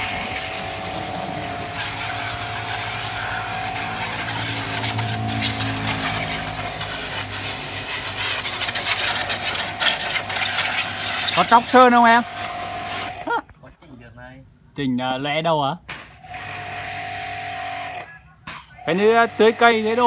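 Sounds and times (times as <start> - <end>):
pressure washer motor humming: 0.0 - 13.2, 16.2 - 18.0, 18.7 - 20.0
water jet spattering: 0.0 - 13.2.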